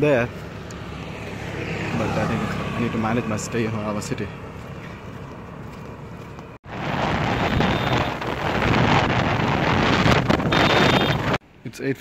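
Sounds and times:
rough wind buffeting microphone: 0.2 - 11.4.

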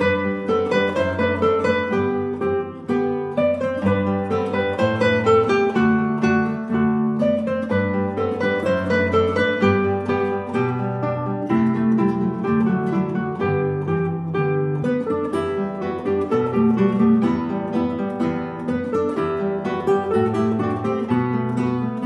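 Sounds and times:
classical guitars playing: 0.0 - 22.0.

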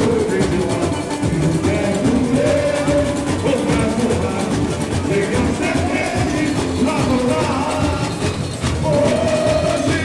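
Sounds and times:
drums: 0.0 - 10.0
person singing over loudspeakers: 0.0 - 10.0.

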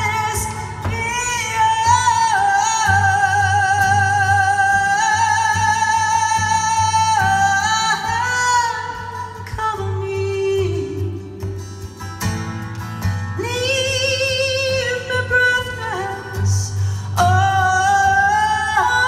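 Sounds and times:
strummed acoustic guitar: 0.0 - 19.0.

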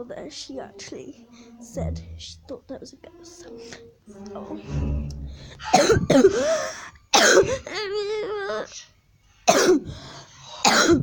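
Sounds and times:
wavering vocal sound: 0.7 - 6.8
girl coughing hard: 5.6 - 7.8, 9.5 - 10.0, 10.6 - 11.0.

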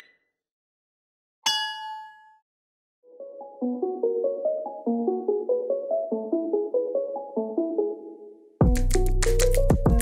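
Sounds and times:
bell ding: 1.4 - 2.4.

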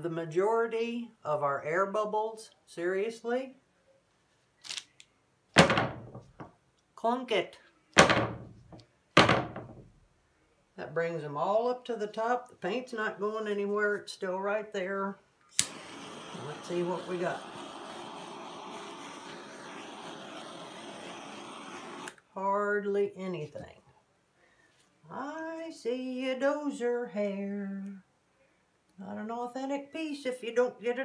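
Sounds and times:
gas torch hissing: 15.6 - 22.2.

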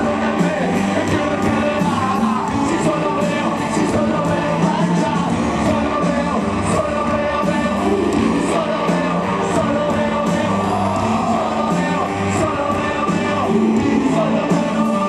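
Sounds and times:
lead singer's vocal: 0.0 - 15.0
live rock band playing: 0.0 - 15.0.

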